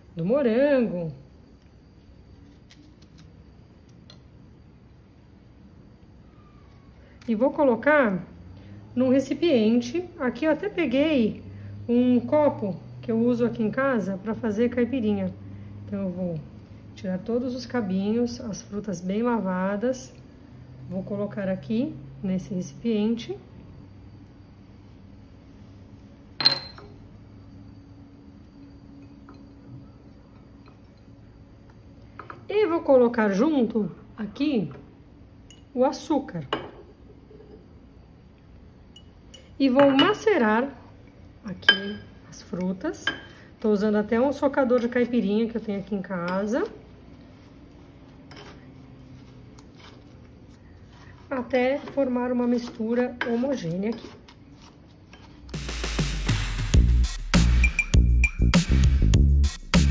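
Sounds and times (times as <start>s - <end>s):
low room hum: 0.0s - 55.6s
glass bowl clink: 26.4s - 27.0s, 28.4s - 31.1s, 35.4s - 35.8s, 36.5s - 37.7s, 38.9s - 40.4s, 41.6s - 43.4s.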